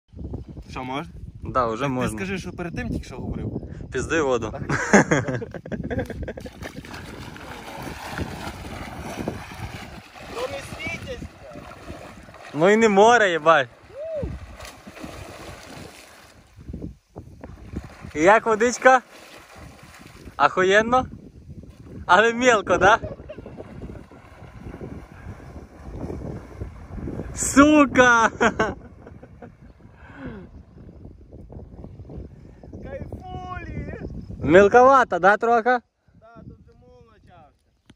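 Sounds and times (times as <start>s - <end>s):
wind buffeting microphone: 0.1s - 35.2s, 35.9s - 37.9s
person wading and splashing water: 6.4s - 16.8s, 17.4s - 20.4s, 23.4s - 27.3s.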